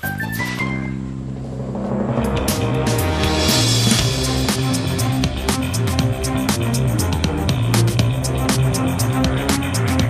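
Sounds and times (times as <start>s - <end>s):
dramatic music low held notes: 0.4s - 10.0s
drum hits: 1.1s - 9.5s.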